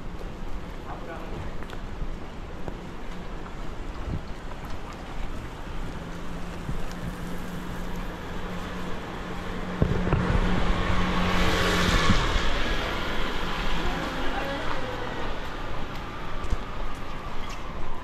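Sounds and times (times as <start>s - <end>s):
car tyres hissing on wet asphalt: 5.1s - 9.8s.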